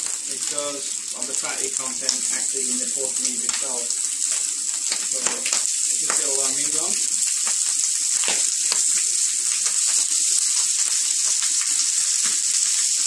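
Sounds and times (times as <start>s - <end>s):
fat crackling and spitting: 0.0s - 13.0s
meat sizzling on a griddle: 0.0s - 13.0s.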